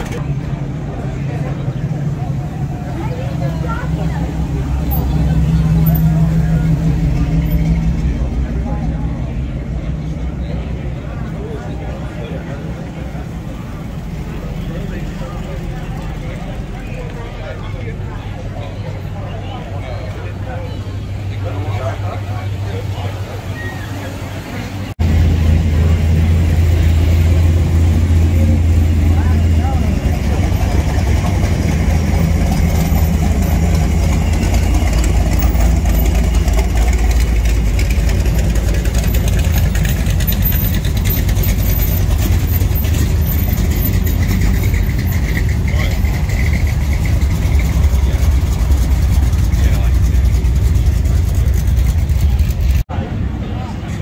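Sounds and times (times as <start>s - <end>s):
car engine idling with exhaust rumble: 0.0s - 54.0s.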